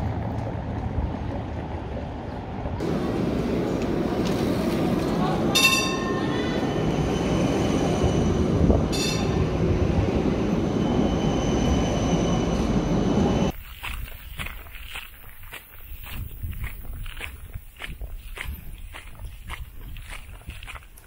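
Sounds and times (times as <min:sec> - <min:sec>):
tram rumbling on rails: 0:00.0 - 0:13.6
wheels squealing: 0:04.4 - 0:13.6.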